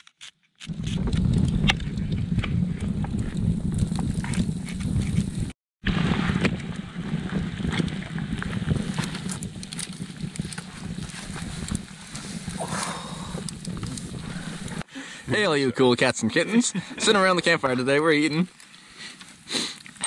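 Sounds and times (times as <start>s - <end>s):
low rumble: 0.7s - 14.8s
campfire crackling and popping: 0.7s - 16.1s.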